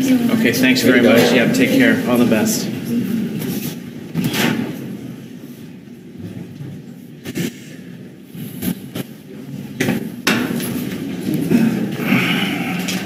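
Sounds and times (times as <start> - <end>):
murmur of people in a room: 0.0 - 13.0.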